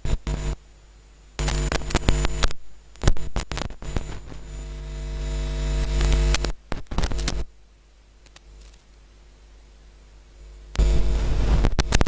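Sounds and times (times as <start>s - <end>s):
electrical hum and buzz: 0.0s - 12.0s
crackling clicks: 1.4s - 4.5s, 5.8s - 7.5s, 8.2s - 9.0s, 10.7s - 12.0s.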